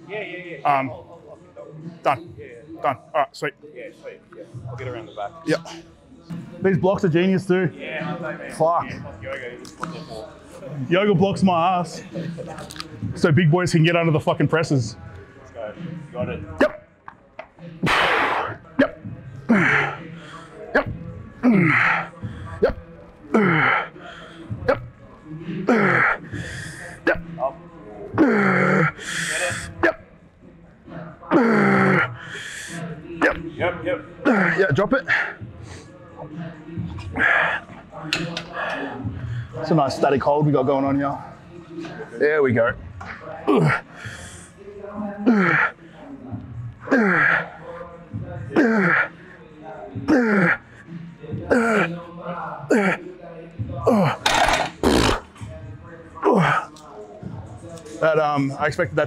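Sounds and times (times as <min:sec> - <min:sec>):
harsh breaths: 0:19.3 - 0:20.8, 0:21.4 - 0:27.1, 0:28.2 - 0:29.8, 0:31.3 - 0:33.0, 0:36.8 - 0:39.7, 0:43.0 - 0:52.0
man groaning and grunting: 0:28.2 - 0:29.0, 0:31.3 - 0:32.1, 0:48.6 - 0:49.1.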